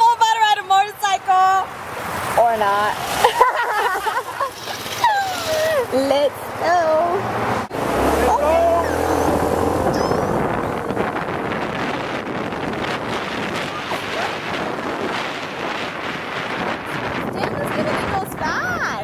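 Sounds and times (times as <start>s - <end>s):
wind roaring over microphone: 5.0s - 19.0s
motorbike low hum: 6.8s - 17.9s.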